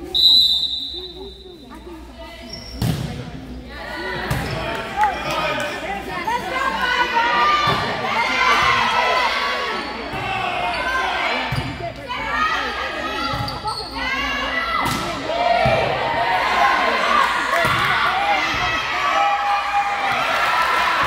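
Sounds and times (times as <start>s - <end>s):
people shouting in a hall: 6.2s - 21.0s.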